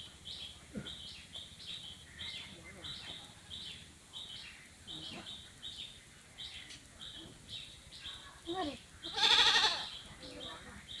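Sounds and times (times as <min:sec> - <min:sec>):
goat bleating: 0:09.1 - 0:09.9.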